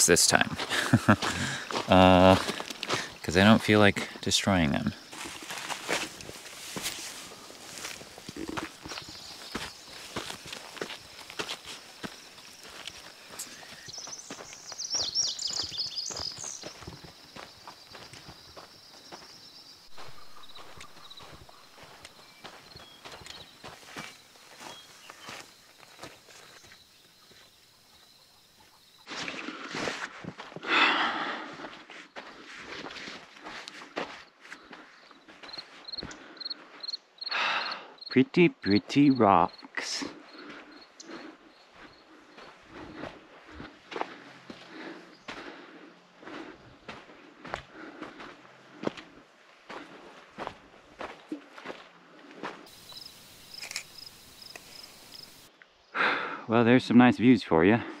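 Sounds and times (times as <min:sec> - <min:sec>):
footsteps crunching on gravel: 0:00.4 - 0:04.2, 0:04.8 - 0:27.6, 0:29.0 - 0:30.7, 0:31.5 - 0:36.3, 0:40.0 - 0:55.4
high chirping: 0:12.1 - 0:27.4.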